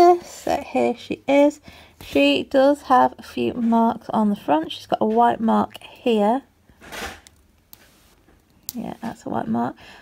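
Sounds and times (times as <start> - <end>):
woman speaking: 0.0 - 6.5, 8.7 - 9.9.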